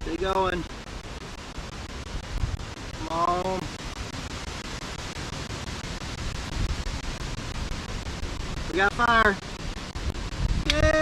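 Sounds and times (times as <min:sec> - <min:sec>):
wind buffeting microphone: 0:00.0 - 0:11.0
man making short voiced sound: 0:10.6 - 0:11.0.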